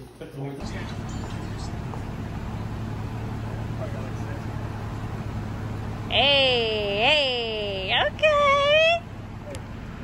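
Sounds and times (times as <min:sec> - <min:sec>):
convertible roof mechanism humming: 0:00.6 - 0:10.0.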